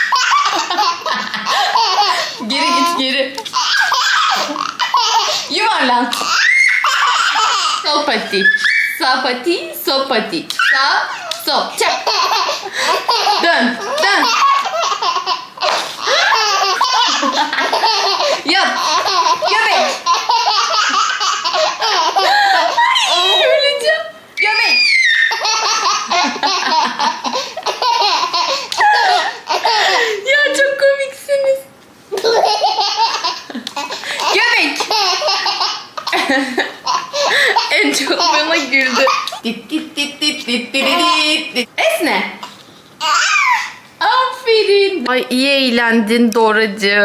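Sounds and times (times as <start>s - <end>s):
baby laughing hard: 0.0s - 8.9s, 10.6s - 23.6s, 24.4s - 30.3s, 32.2s - 39.4s, 40.8s - 41.4s, 43.0s - 43.8s.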